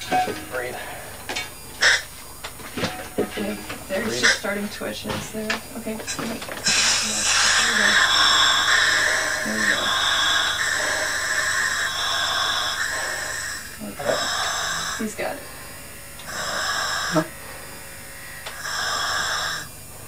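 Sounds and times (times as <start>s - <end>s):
gas hissing at mouthpiece: 0.7s - 2.5s, 6.1s - 20.0s
low grunting breaths: 6.7s - 15.4s.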